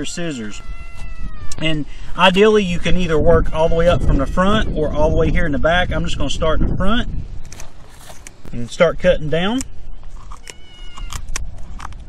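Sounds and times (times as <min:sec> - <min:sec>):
kitten meowing: 0:00.4 - 0:01.7, 0:03.0 - 0:04.9, 0:10.4 - 0:11.2.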